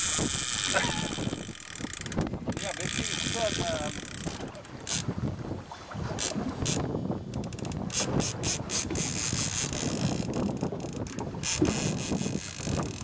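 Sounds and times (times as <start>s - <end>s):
fishing reel drag buzzing: 0.0s - 5.1s, 6.2s - 13.0s
wind on microphone: 0.0s - 13.0s.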